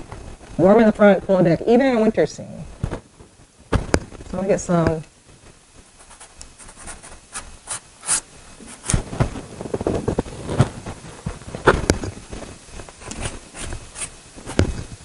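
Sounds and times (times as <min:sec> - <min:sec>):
pastel scraping on paper: 0:06.0 - 0:09.0, 0:13.0 - 0:14.6.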